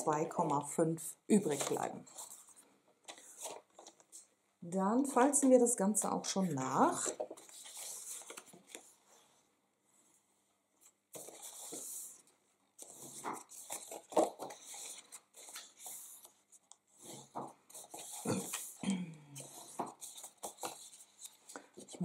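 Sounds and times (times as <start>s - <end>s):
paper rustling and crackling: 1.3s - 4.3s, 6.4s - 9.3s, 10.8s - 18.8s, 19.4s - 22.0s
bone folder scraping along fold: 11.2s - 18.8s.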